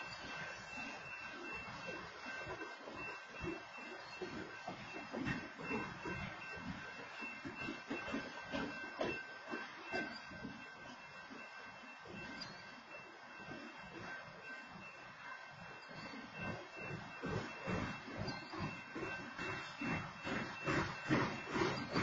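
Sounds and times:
freight train wheels rumbling: 0.0s - 22.0s.

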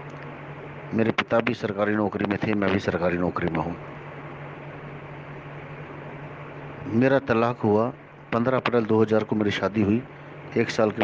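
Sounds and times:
low even hum: 0.0s - 11.0s
steady hiss: 0.0s - 11.0s.

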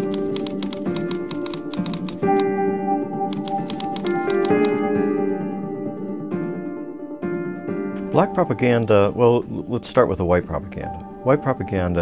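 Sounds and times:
typewriter keys striking: 0.0s - 2.4s, 3.3s - 4.8s
sustained piano-like music: 0.0s - 12.0s.

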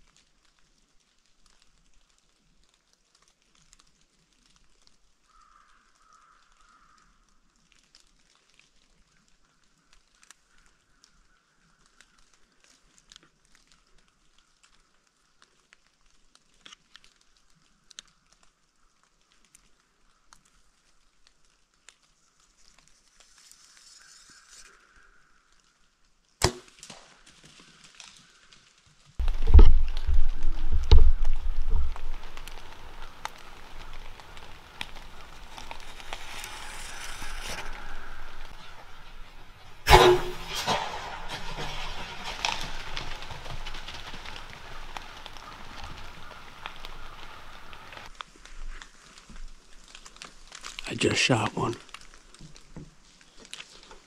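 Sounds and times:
faint ticks and rustles in leaves: 0.0s - 39.9s, 40.7s - 54.0s
bow shot snap: 26.4s - 27.1s, 34.8s - 41.6s
deer crashing through dry leaves: 26.4s - 51.2s.

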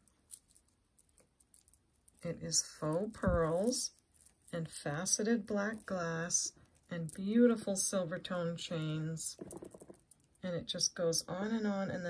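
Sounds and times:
beads and chain clicking: 0.0s - 5.0s, 8.8s - 10.4s.

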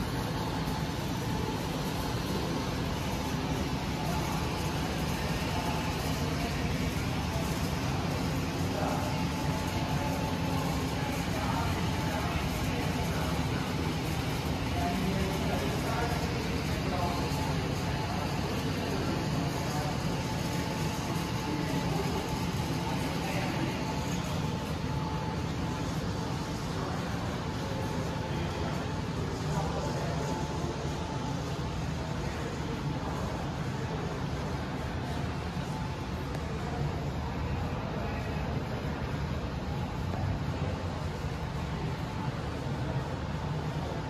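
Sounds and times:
low room rumble: 0.0s - 44.0s.

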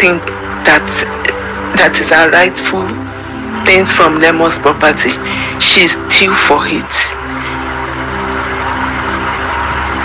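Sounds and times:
music of held notes: 0.0s - 10.0s.

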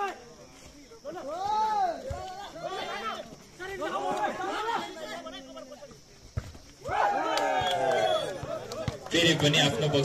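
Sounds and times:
voices shouting: 1.0s - 6.0s, 6.8s - 10.0s.

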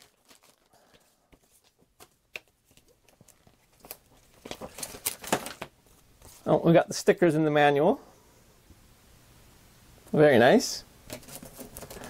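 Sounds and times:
paper rustling: 0.0s - 6.5s, 11.1s - 12.0s.

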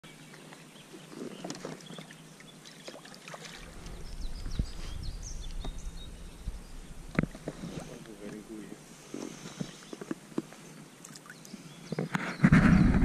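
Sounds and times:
low rumble: 3.6s - 8.1s.

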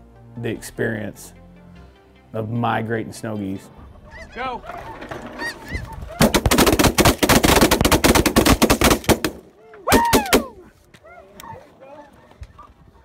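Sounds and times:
snow geese calling: 3.8s - 6.5s
loud goose honk: 4.0s - 6.3s
shotguns firing rapid volley: 6.2s - 10.5s.

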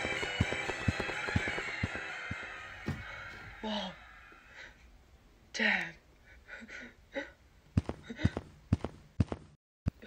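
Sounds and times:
heavy footstep thuds: 7.8s - 10.0s.

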